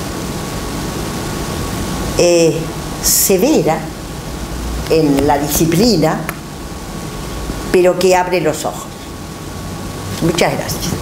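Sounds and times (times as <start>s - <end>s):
room background hiss: 0.0s - 11.0s.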